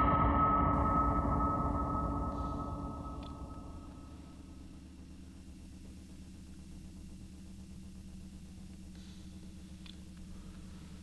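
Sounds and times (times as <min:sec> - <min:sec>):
ringing tone: 0:00.0 - 0:04.8
faint low hum: 0:00.0 - 0:11.0.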